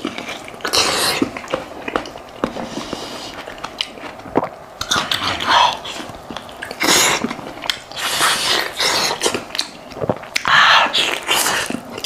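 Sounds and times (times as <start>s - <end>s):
man chewing meat: 0.0s - 12.0s
loud slurping: 2.6s - 10.2s.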